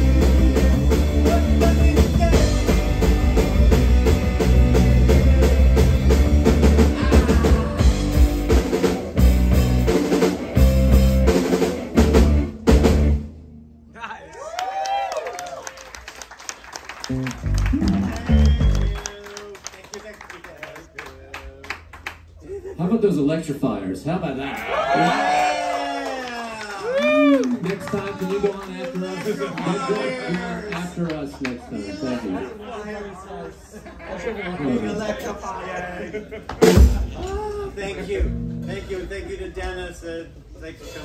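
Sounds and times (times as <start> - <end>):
rock band playing loudly: 0.0 - 13.5, 17.0 - 19.1, 36.5 - 37.2
bass guitar notes: 0.0 - 14.1, 17.0 - 19.1, 36.6 - 39.7
electric guitar bends: 2.5 - 9.8.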